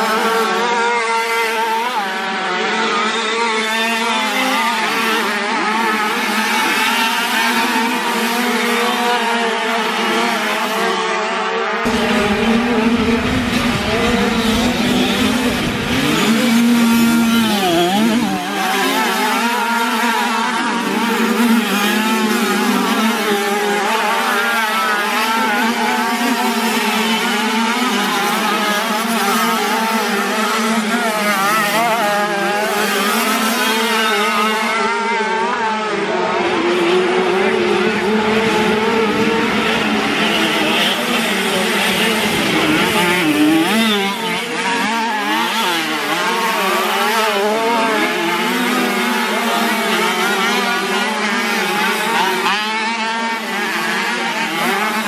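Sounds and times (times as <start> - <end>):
motocross bikes racing: 0.0 - 55.0.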